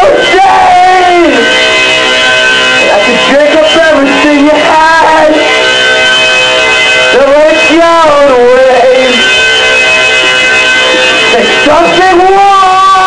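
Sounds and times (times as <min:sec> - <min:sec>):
person singing: 0:00.0 - 0:01.6, 0:02.8 - 0:05.5, 0:07.1 - 0:09.3, 0:11.3 - 0:13.0
ringing chords: 0:00.0 - 0:13.0.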